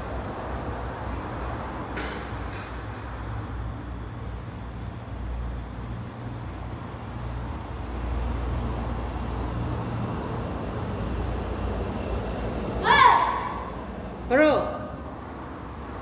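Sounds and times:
low hum of large hall: 0.0s - 16.0s.

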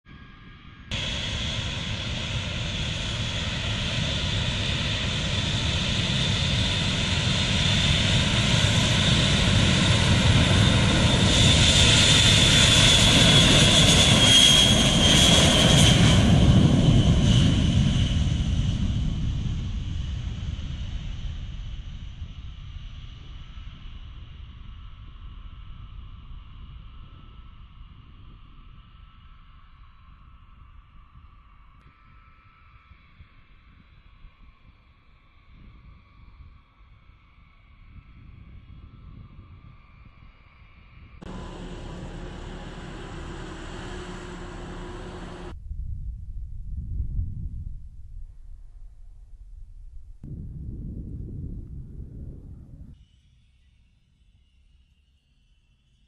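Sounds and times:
high jet whine: 0.9s - 19.1s, 41.2s - 45.6s
jet engines roaring: 0.9s - 21.2s, 41.2s - 45.6s.

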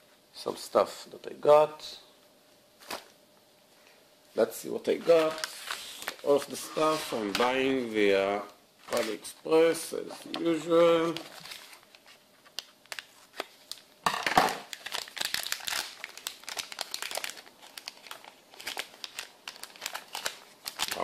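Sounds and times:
plastic bags crinkling: 4.9s - 7.4s, 11.0s - 13.9s, 14.6s - 21.0s
plastic rustle: 4.9s - 7.4s, 11.0s - 13.8s, 14.6s - 21.0s.

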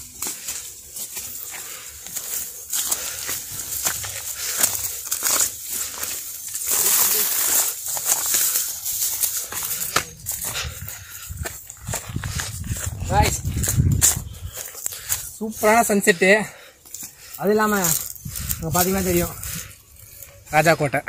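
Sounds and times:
dry brush rustling and crackling: 0.0s - 20.9s.

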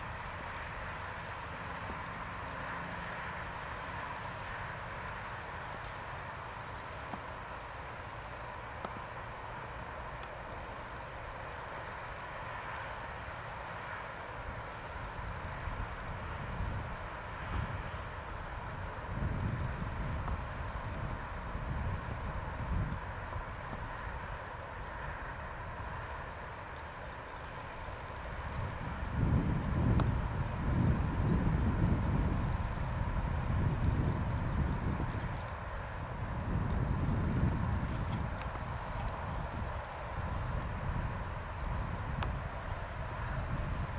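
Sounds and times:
faint distant hum: 0.0s - 43.9s
wind buffeting microphone: 15.0s - 24.4s, 27.6s - 43.9s.

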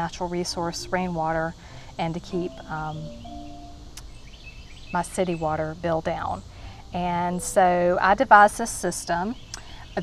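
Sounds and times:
faint outdoor background noise: 0.0s - 10.0s
soft high chirps: 2.1s - 4.2s.

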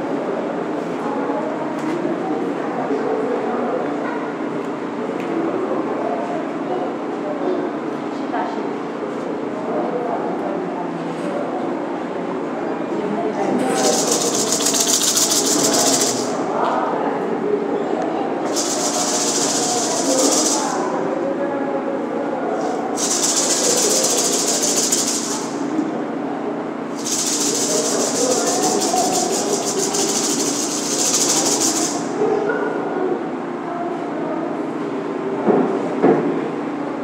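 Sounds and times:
hand rattle shaken rapidly: 13.7s - 16.4s, 18.5s - 20.9s, 22.6s - 25.7s, 26.9s - 32.2s.

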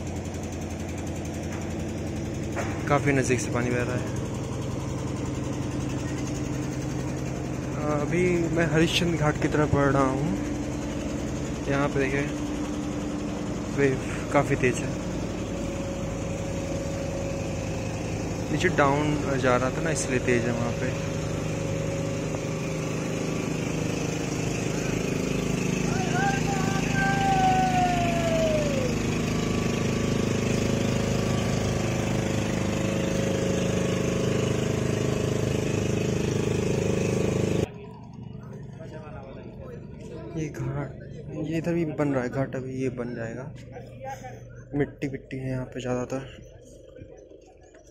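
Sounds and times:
motorboat engine running: 0.0s - 47.9s
mechanical hum with thin tone: 37.6s - 47.9s.

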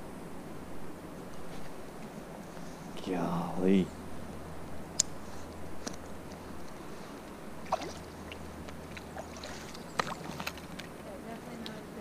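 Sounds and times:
river water lapping: 6.3s - 12.0s.

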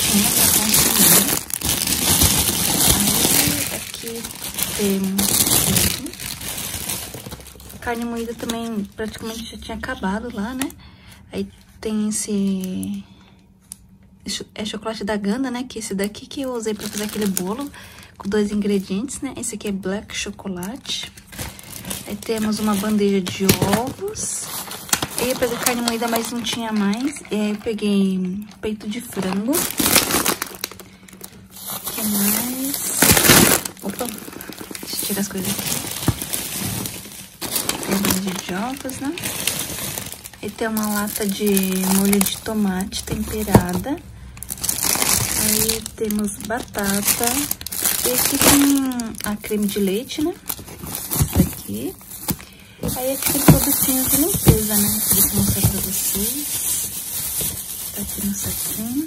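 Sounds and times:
plastic bags crinkling: 0.0s - 10.8s, 11.4s - 13.0s, 16.0s - 59.0s.

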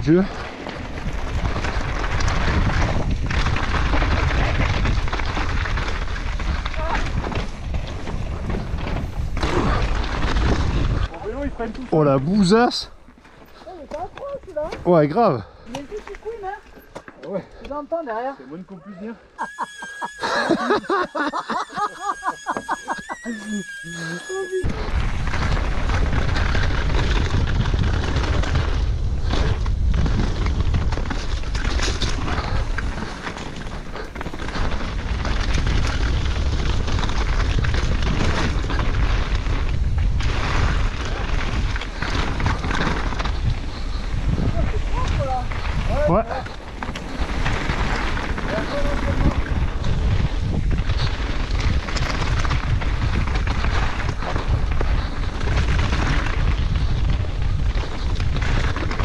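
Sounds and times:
tyres rolling over gravel: 0.0s - 16.8s, 19.4s - 59.0s
wind rumbling on microphone: 0.0s - 16.9s, 19.5s - 59.0s
bike rattling over stones: 0.0s - 18.3s, 19.4s - 59.0s.

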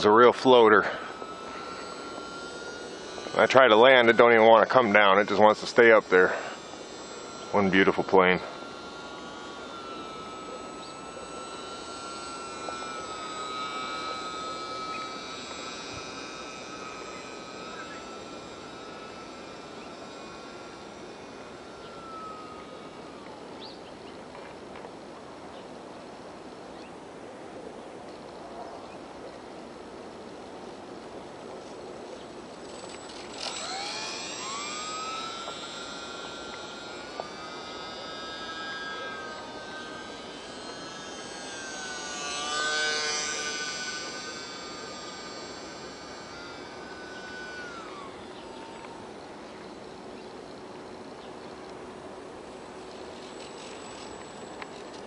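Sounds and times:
model plane motor whining: 0.0s - 55.0s.

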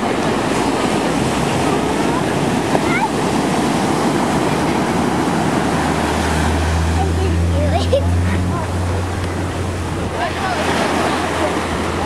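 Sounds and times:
surf washing onto beach: 0.0s - 12.0s
wind on microphone: 0.0s - 12.0s.

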